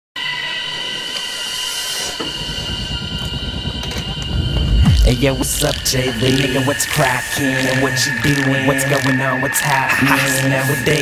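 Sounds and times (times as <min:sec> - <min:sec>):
high-pitched whistling tone: 0:00.2 - 0:11.0.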